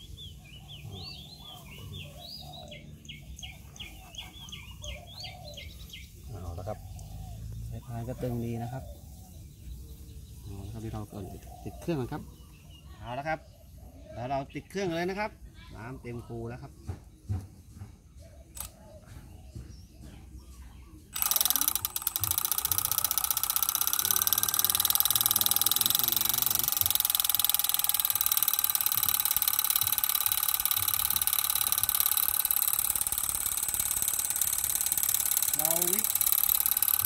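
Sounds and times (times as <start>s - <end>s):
model tractor motor whirring: 18.6s - 18.8s, 21.1s - 37.0s
water pumping: 21.2s - 37.0s.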